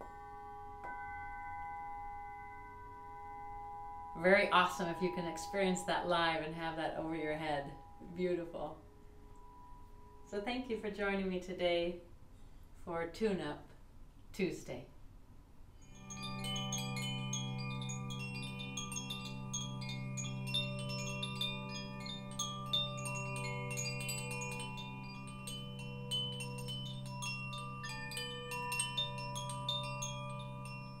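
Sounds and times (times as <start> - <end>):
wind chimes ringing: 0.0 - 10.3, 15.8 - 31.0.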